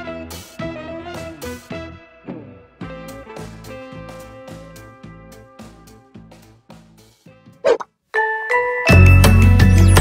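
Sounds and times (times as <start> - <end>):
chime-like dings: 8.2 - 9.7.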